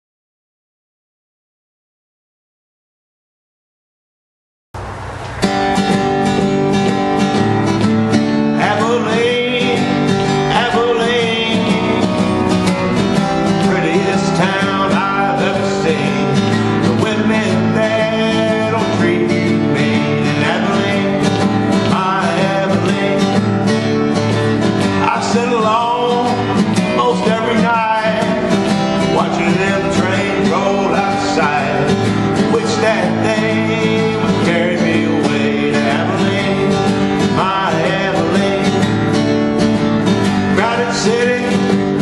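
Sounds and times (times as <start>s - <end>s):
acoustic guitar strumming: 4.8s - 42.0s.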